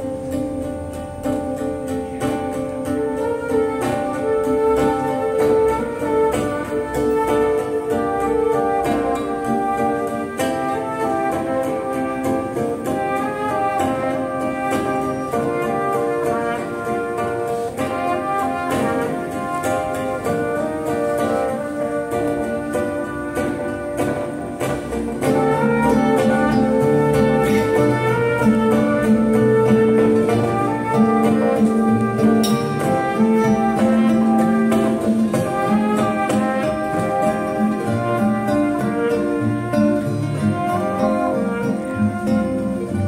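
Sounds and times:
acoustic band playing: 0.0 - 43.0.

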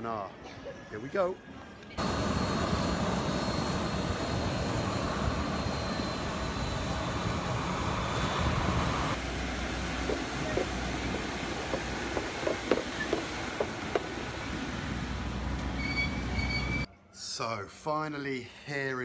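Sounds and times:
jet aircraft noise: 1.9 - 15.8
high steady whine: 2.0 - 16.9
footsteps on metal stairs: 10.0 - 14.3.

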